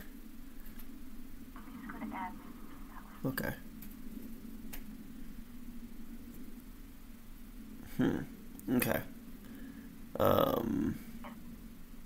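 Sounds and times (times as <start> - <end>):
call line hum: 0.0 - 12.0.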